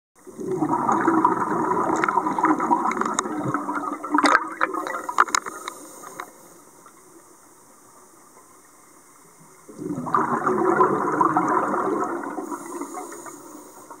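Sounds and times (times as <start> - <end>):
underwater exhalation bubbles: 0.3 - 5.4, 9.7 - 13.1.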